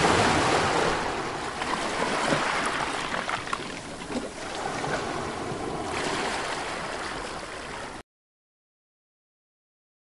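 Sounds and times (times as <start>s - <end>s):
water lapping around boat hull: 0.0s - 8.0s.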